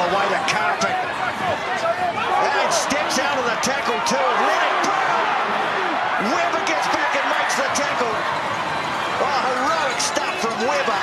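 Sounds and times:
stadium crowd cheering and shouting: 0.0 - 11.0.

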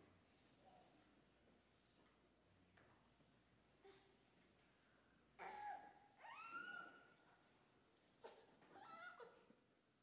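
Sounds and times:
faint high-pitched vocal calls: 5.4 - 7.2.

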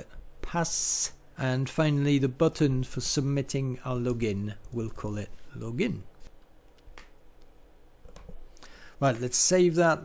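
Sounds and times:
keyboard and mouse clicks: 6.4 - 8.4.

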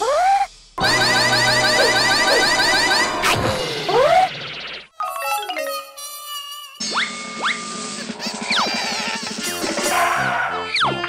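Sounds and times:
background music: 7.0 - 11.0.

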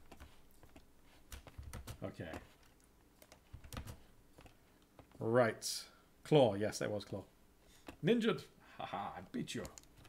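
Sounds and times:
faint computer keyboard typing: 0.0 - 5.2, 9.5 - 10.0.

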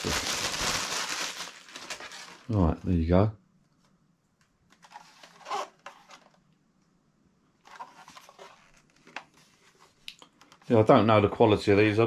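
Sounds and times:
plastic device handling noise: 0.0 - 2.5, 4.6 - 6.6, 7.6 - 10.7.

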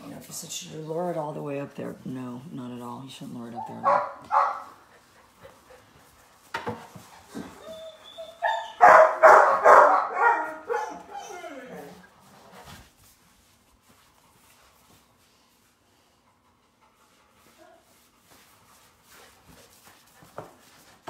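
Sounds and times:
puppy barking and yapping: 3.6 - 4.8, 7.6 - 11.9.

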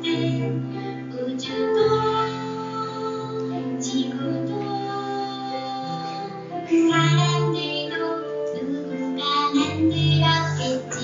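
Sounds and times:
instrumental backing: 0.0 - 11.0
children and women singing: 1.2 - 5.8, 6.7 - 11.0.

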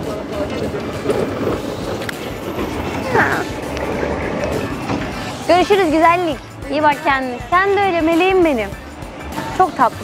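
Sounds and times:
roller coaster rumbling on track: 0.0 - 10.0.

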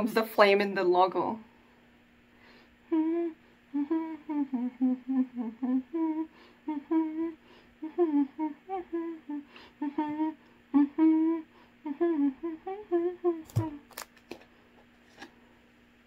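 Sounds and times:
faint steady tone: 1.4 - 13.8
woman humming a tune: 2.8 - 13.9.

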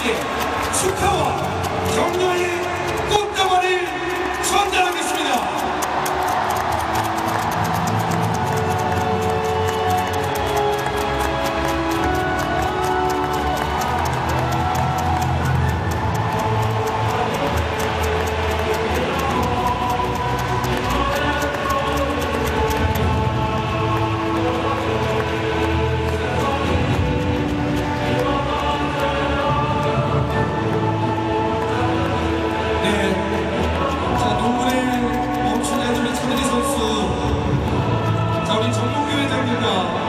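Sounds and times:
fast ticking beat: 0.0 - 40.0
music over public address: 0.0 - 40.0.

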